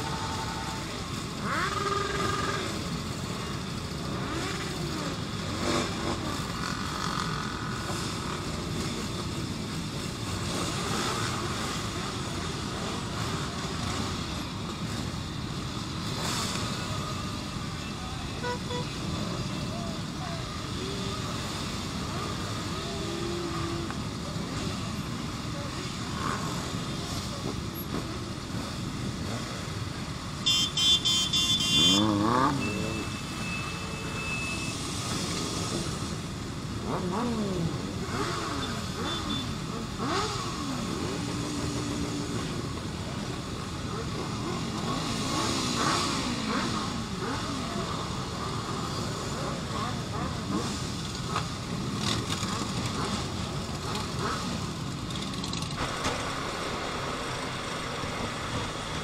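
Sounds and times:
motorcycle engines idling: 0.0 - 30.5, 31.5 - 59.0
loud horn: 18.4 - 19.0, 30.4 - 33.0.

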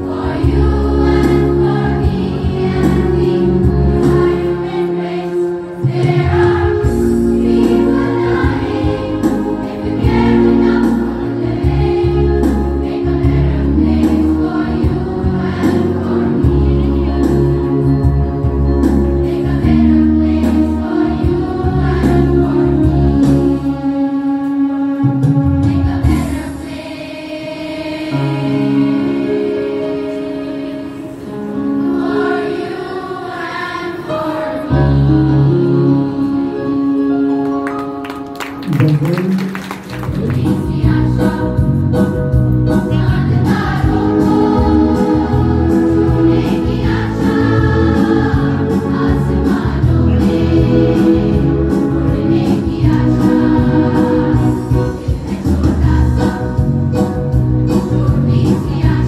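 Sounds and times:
choir of women singing: 0.0 - 18.0, 18.9 - 36.9, 40.4 - 41.9, 42.7 - 57.0, 57.7 - 59.0
instrumental accompaniment: 0.0 - 59.0
low bass notes: 40.1 - 59.0.

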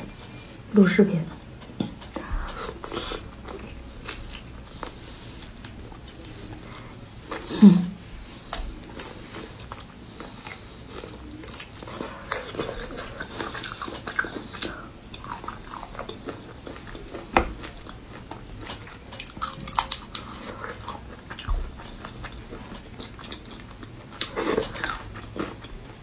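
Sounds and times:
chewing and biting shrimp: 1.6 - 7.5, 8.2 - 25.9.

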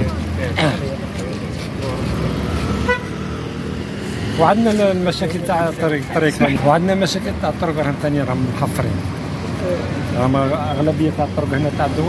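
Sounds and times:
street traffic: 0.0 - 12.0
short vehicle horn beep: 2.8 - 3.1.

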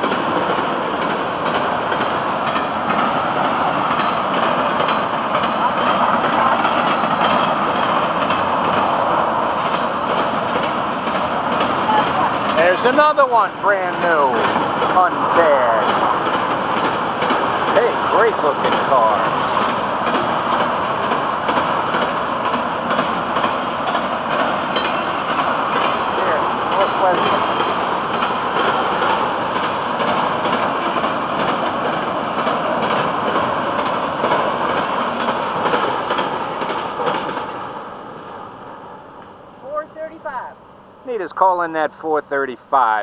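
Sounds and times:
freight train wheels on track: 0.0 - 43.0.

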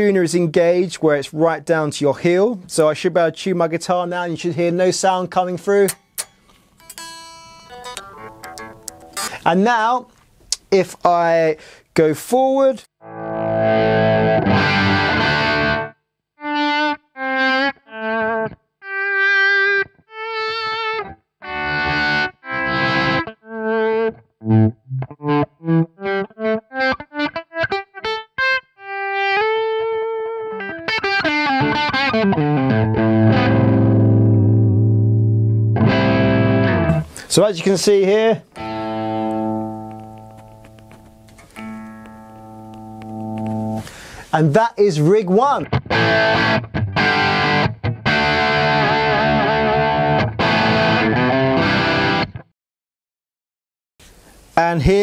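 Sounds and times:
electric guitar chords: 5.9 - 9.4, 13.0 - 37.2, 38.5 - 44.1, 45.6 - 52.5.

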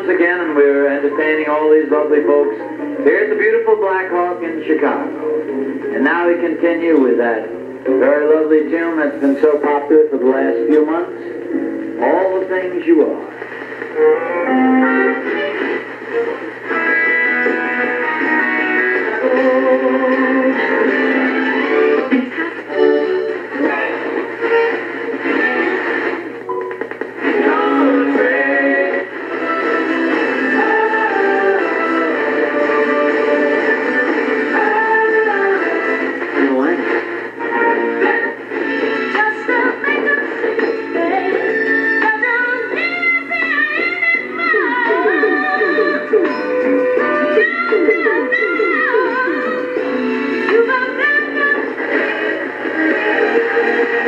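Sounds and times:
music with singing from small speaker: 0.0 - 54.0.

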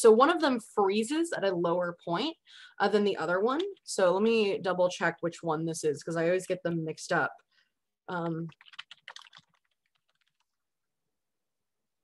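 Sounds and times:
typing on computer keyboard: 8.5 - 10.5.

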